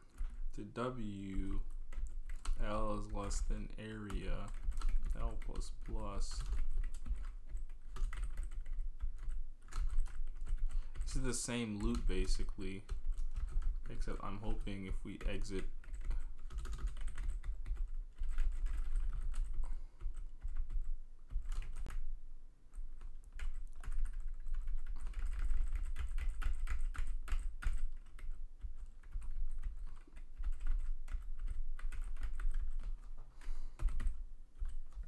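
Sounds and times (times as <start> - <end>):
typing on a keyboard: 0.0 - 0.4, 1.4 - 11.2, 11.8 - 22.0, 22.7 - 35.0.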